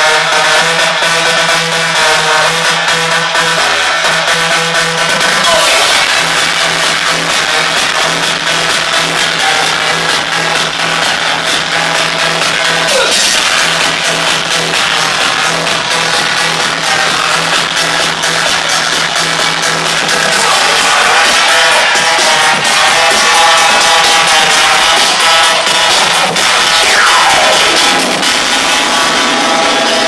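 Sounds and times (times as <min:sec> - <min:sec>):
loud electronic dance music: 0:00.0 - 0:30.0.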